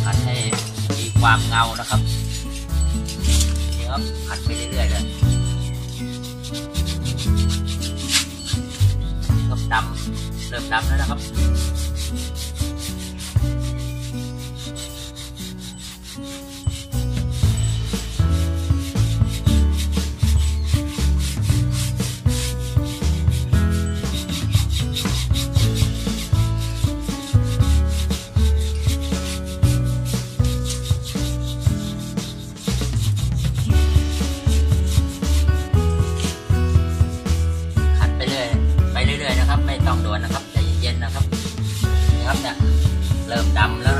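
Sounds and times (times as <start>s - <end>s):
background music: 0.0s - 43.9s
brush scrubbing rubber tyre: 0.0s - 43.9s.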